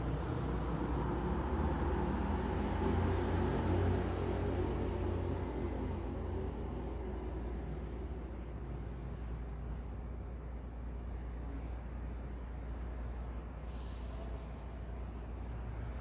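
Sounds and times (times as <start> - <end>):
low rumbling background noise: 0.0 - 16.0.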